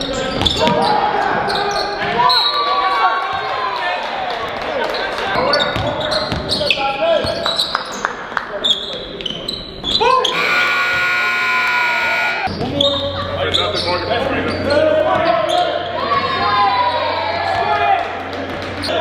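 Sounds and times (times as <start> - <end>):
sneakers squeaking on hardwood: 0.0 - 2.6, 5.4 - 7.8, 8.6 - 11.3, 12.4 - 16.0
basketball bouncing on court: 5.6 - 6.6
players calling out: 8.6 - 19.0.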